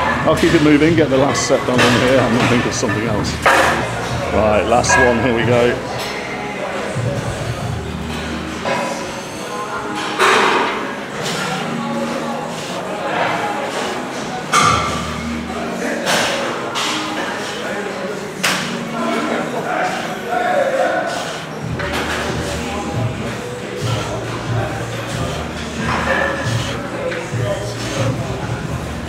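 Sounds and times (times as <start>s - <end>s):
background music: 0.0s - 29.0s
people talking: 0.0s - 29.0s.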